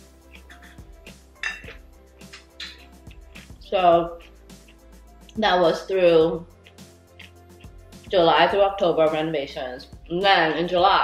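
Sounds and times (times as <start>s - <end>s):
soft background music: 0.0s - 11.0s
chopsticks clinking on bowl: 1.4s - 3.0s.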